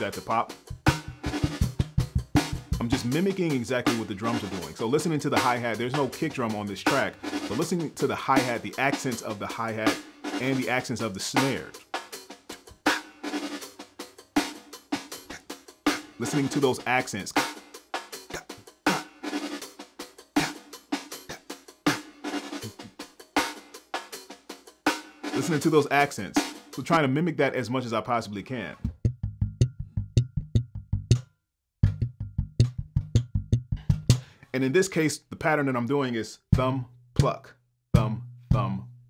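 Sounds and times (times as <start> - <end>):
slapped electric bass: 0.0 - 9.8, 28.8 - 31.2, 31.8 - 34.3, 36.6 - 39.0
drum track snare and hi-hat: 0.0 - 27.5, 28.7 - 31.2, 31.8 - 34.4, 36.5 - 39.0.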